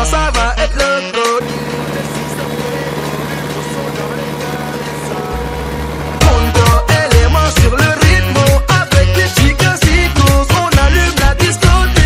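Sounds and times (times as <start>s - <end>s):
background music with a beat: 0.0s - 12.0s
tractor diesel engine running: 1.4s - 11.8s.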